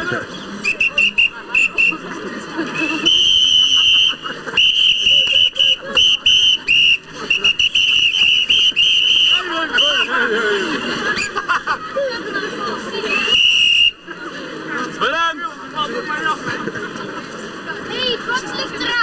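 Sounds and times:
crowd voices: 0.0 - 19.0.

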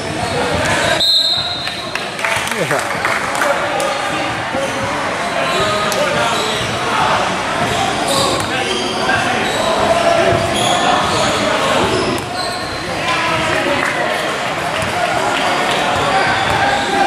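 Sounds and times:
people talking in large hall: 0.0 - 17.0.

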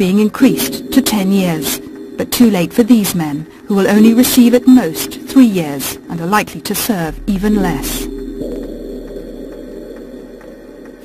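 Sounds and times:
low background music: 0.0 - 11.0.

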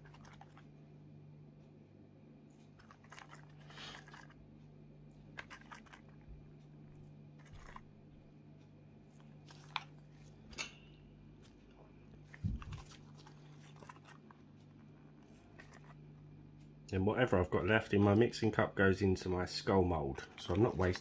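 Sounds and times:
steady low hum: 0.0 - 21.0
gloved hands handling noises: 9.2 - 10.7, 11.4 - 14.8, 20.2 - 21.0.

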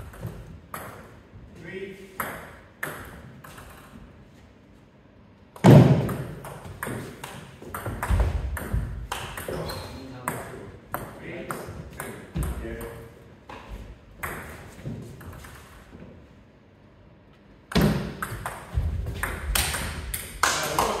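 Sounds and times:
ball bouncing on wooden floor: 0.0 - 1.2, 2.2 - 4.0, 5.6 - 16.2, 17.7 - 21.0
ball clicking off bats and table: 5.5 - 9.6, 17.7 - 21.0.

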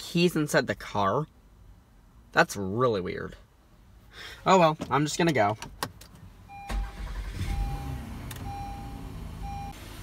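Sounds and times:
dashboard warning chime beeping: 6.4 - 9.8
van engine starting and idling: 6.5 - 10.0.

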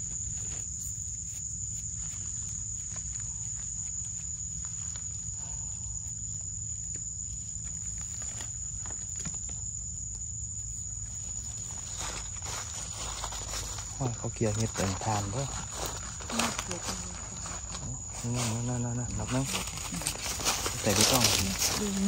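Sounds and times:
insects droning: 0.0 - 22.0
footsteps in dry leaves: 11.1 - 22.0.

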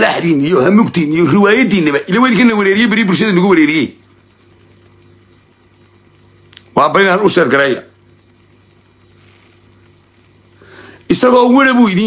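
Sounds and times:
light hiss: 4.0 - 7.1, 7.9 - 11.7.

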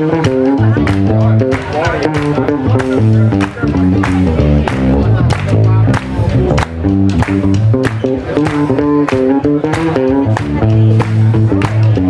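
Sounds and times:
drums keeping steady beat: 0.0 - 12.0
electric guitars playing blues: 0.0 - 12.0.

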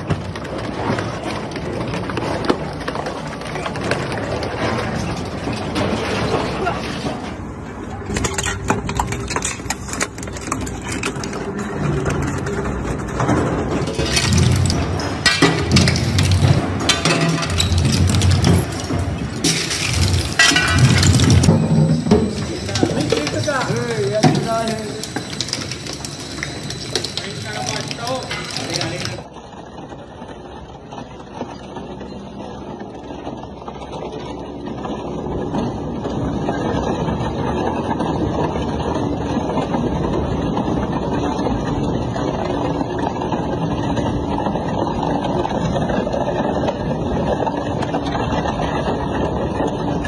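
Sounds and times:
metal cracking and crunching: 0.0 - 29.4
steady machine noise: 7.3 - 50.0
shredder droning: 11.2 - 29.2.

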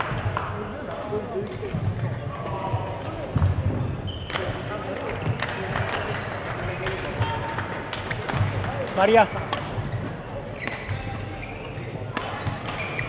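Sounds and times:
shoes squeaking on court: 2.8 - 5.5, 9.0 - 13.0
rackets hitting shuttlecocks: 4.3 - 13.0.

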